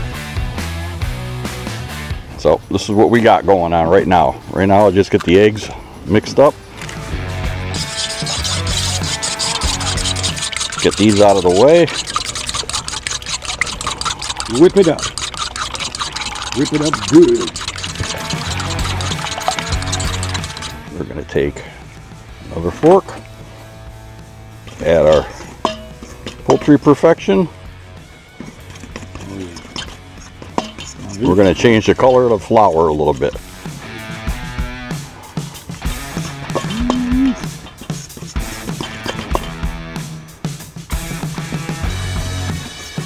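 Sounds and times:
background music with held notes: 0.0 - 43.0
fork scraping metal bowl: 7.7 - 20.8, 24.7 - 26.8, 28.4 - 32.0, 33.0 - 33.5, 35.7 - 39.7.

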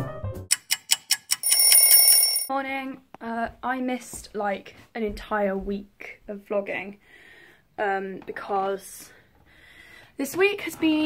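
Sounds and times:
music: 0.0 - 0.5
clock ticking: 0.5 - 2.5
alarm bell ringing: 1.4 - 2.5
woman's voice: 2.5 - 7.0, 7.8 - 9.2, 10.2 - 11.0.

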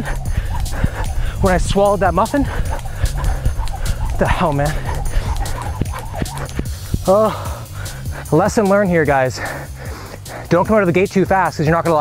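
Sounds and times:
jump rope slapping pavement: 0.0 - 7.8
man panting: 0.0 - 11.0
background music with steady beat: 0.0 - 12.0.

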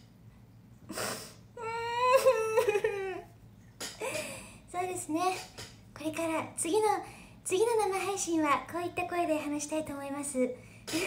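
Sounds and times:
woman whimpering: 1.6 - 3.3.

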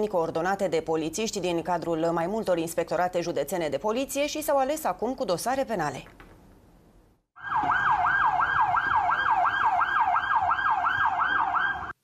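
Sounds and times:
emergency siren yelping: 7.4 - 12.0.

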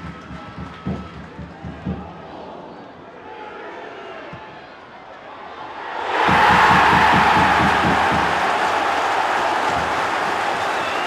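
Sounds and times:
football crowd cheering: 0.0 - 11.0
rapid low thumps: 6.2 - 8.4.

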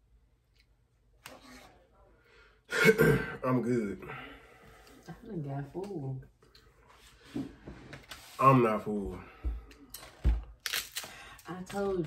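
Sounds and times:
man clearing his throat: 2.7 - 3.5.

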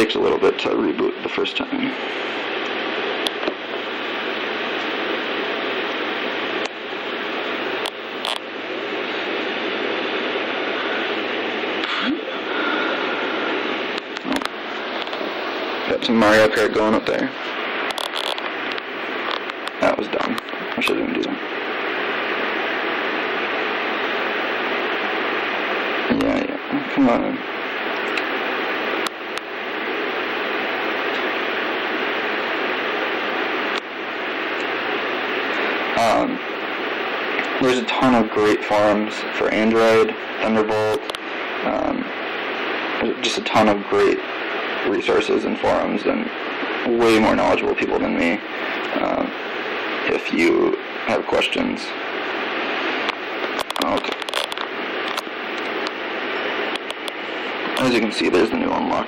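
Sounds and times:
steady background hiss: 0.0 - 59.0
sharp clicks: 56.7 - 57.8.

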